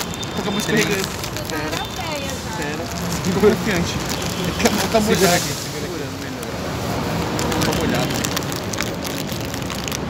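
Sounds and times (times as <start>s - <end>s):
plastic snack bag crinkling: 0.0s - 10.0s
street traffic hum: 0.0s - 10.0s.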